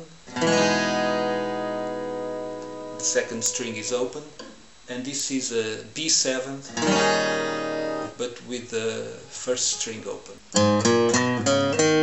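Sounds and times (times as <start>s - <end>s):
acoustic guitar chord strummed: 0.0s - 4.4s, 6.7s - 12.0s.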